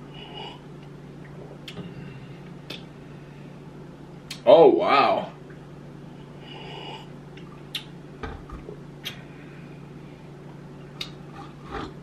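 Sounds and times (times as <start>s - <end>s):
steady low hum: 0.0s - 12.0s
mouth clicks: 7.7s - 7.9s.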